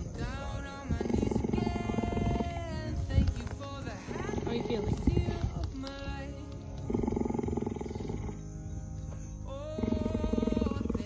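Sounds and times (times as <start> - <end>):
cheetah purring: 0.0 - 5.9, 6.7 - 8.6, 9.6 - 11.0
background music: 0.0 - 11.0.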